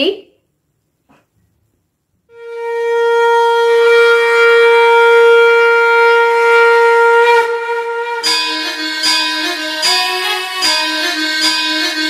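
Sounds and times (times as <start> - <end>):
long note on wind instrument: 2.3 - 12.0.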